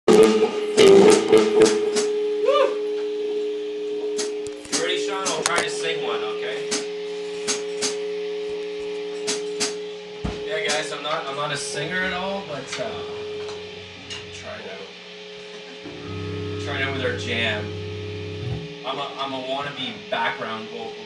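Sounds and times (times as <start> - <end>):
rock band held notes: 15.8 - 19.3.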